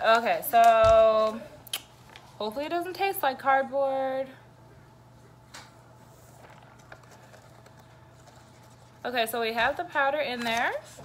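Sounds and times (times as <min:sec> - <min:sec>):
paper packet rustling: 0:06.2 - 0:09.1, 0:09.7 - 0:11.0.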